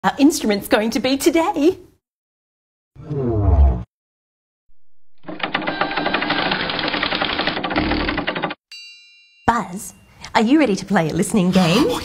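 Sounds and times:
rapid mechanical clattering: 5.3 - 8.6.

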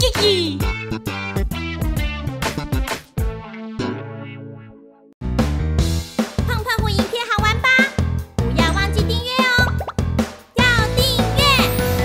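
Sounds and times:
children's music jingle: 6.4 - 12.0.

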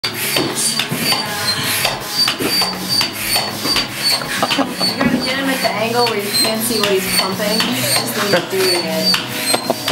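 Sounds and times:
rasping squeak of pump: 0.0 - 9.9
manual air pump strokes: 0.1 - 9.9.

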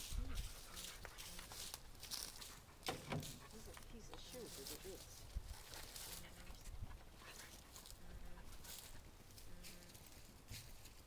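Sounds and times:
dog sniffing: 0.0 - 9.1.

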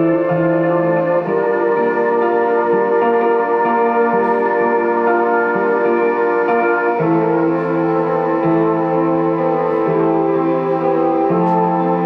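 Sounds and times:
held synthesizer chords: 0.0 - 12.0.

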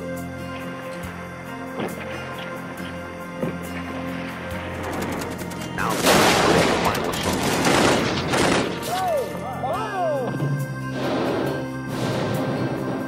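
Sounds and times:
rapid small-arms gunfire: 4.8 - 8.9.

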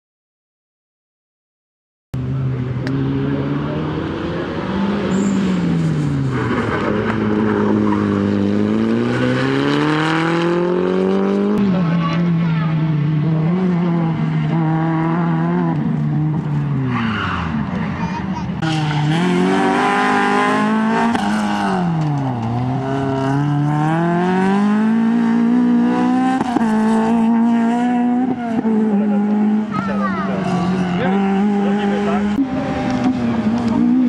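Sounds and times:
rally car engine revving: 2.2 - 34.0.

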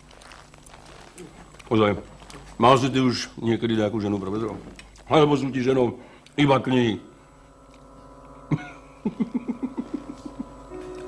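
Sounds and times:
man laughing: 8.5 - 10.6.

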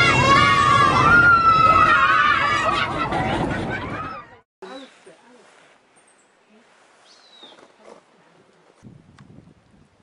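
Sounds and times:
voices shouting: 0.0 - 4.4.

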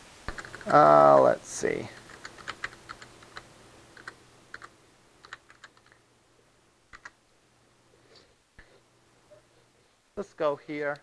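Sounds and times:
computer keyboard keystrokes: 0.3 - 0.7, 2.0 - 6.0, 6.9 - 7.2
sharp clicks: 6.9 - 7.2.

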